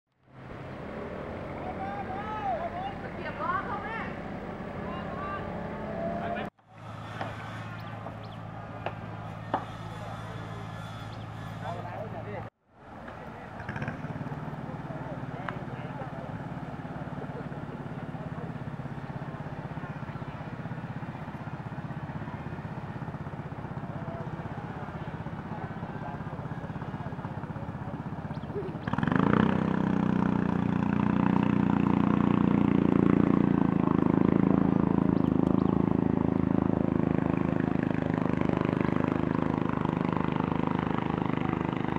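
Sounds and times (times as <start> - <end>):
ferry engine drone: 0.2 - 41.9
voices calling: 0.8 - 41.9
steady motor hum: 3.5 - 12.2.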